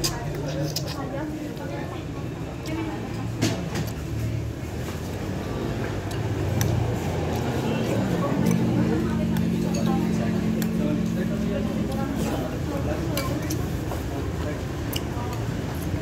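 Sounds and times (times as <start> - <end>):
road traffic hum: 0.0 - 16.0.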